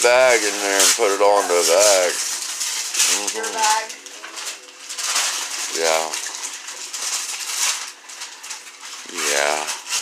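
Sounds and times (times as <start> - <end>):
wrapping paper crinkling and tearing: 0.0 - 10.0.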